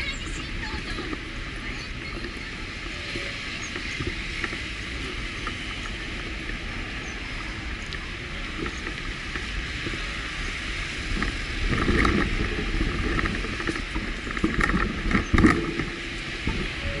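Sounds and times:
road traffic rumble: 0.0 - 17.0.

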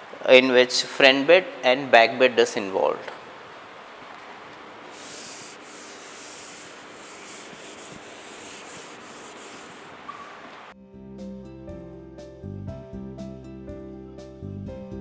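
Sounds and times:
whiteboard being wiped: 4.8 - 10.6
soft music: 10.8 - 15.0.

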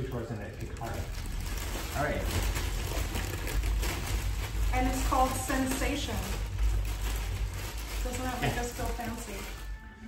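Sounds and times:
plastic bag crinkling: 0.0 - 10.0
steady low rumble: 0.6 - 9.6.

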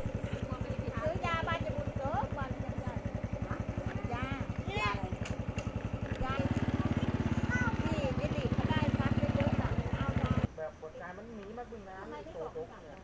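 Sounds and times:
small engine idling: 0.0 - 10.5
people's voices: 0.2 - 13.0.

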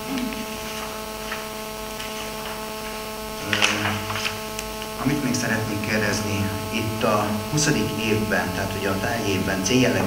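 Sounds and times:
electrical mains hum: 0.0 - 10.0
faint small noises: 0.0 - 10.0.

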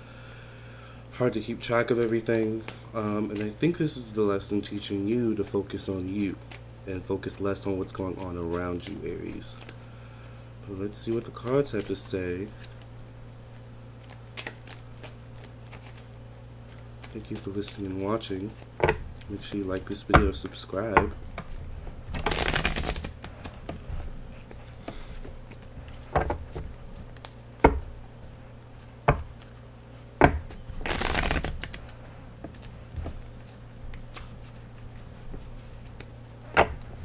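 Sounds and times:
steady low hum: 0.0 - 37.0
cards being shuffled: 1.9 - 3.7, 6.1 - 9.8, 13.5 - 27.9, 28.7 - 37.0.

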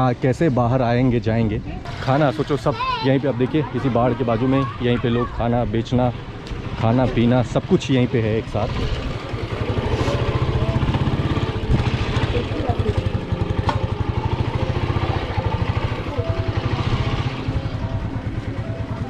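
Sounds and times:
faint voices: 1.6 - 19.0
motorcycle engine running: 6.1 - 19.0.

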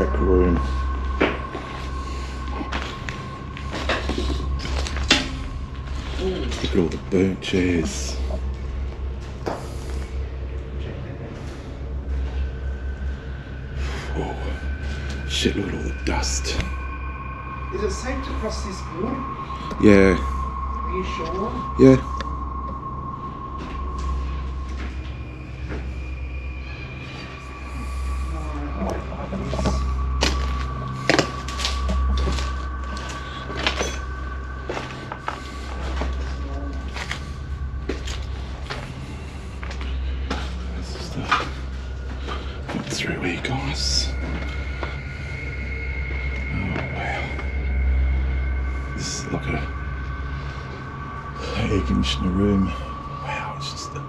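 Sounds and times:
faint steady high tones: 0.0 - 54.0
low pulsing rumble: 0.0 - 54.0.

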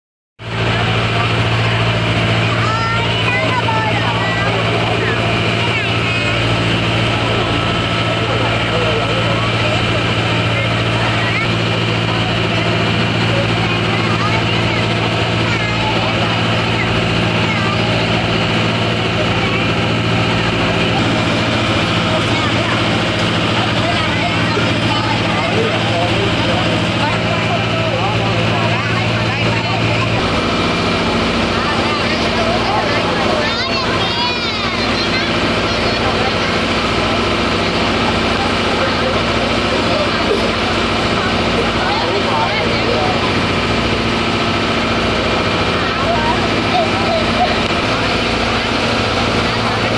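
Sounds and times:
ferry engine humming: 0.4 - 49.9.

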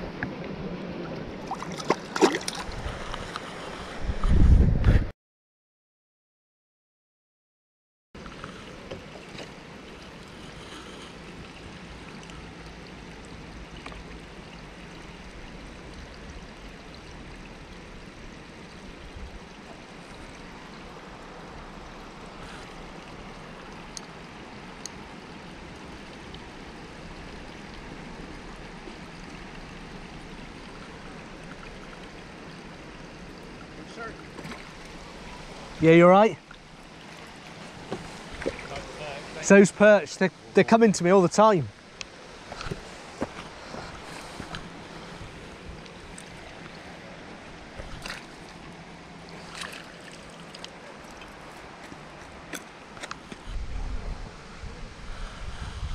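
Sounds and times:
steady outdoor hiss: 0.0 - 4.4, 8.2 - 55.9.

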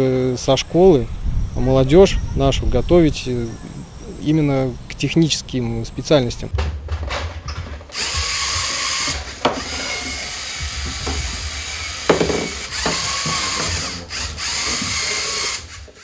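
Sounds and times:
small electric motors whirring: 0.0 - 6.6, 7.7 - 16.0
sharp knocks: 6.5 - 13.7.

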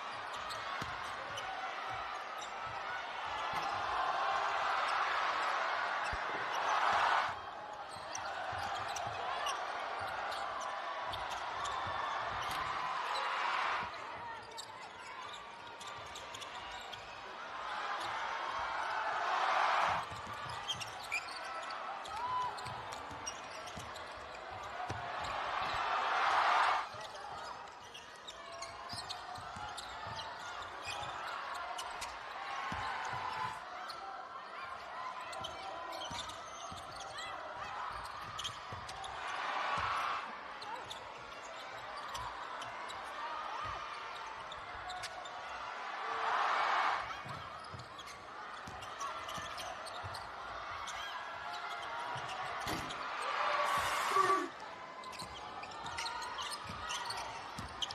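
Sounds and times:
crowd murmur: 51.6 - 55.5.

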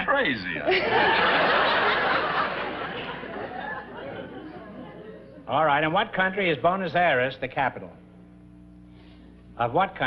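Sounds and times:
studio audience laughter: 0.6 - 5.4.

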